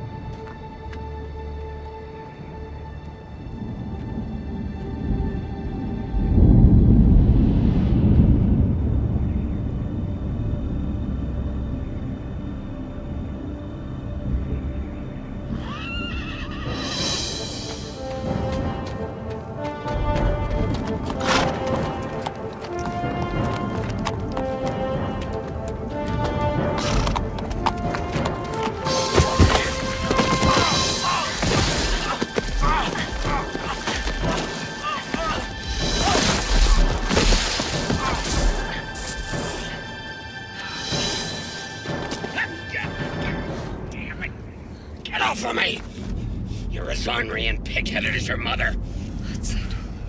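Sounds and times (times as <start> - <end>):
brooding music: 0.0 - 50.0
deep rumble: 3.4 - 15.6
horse neighing: 15.6 - 17.0
horse hoofbeats: 17.6 - 38.6.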